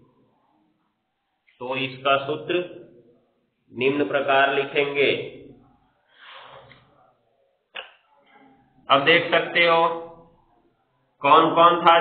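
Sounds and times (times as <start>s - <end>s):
man speaking: 1.6s - 2.9s, 3.7s - 5.6s, 8.8s - 10.2s, 11.2s - 12.0s.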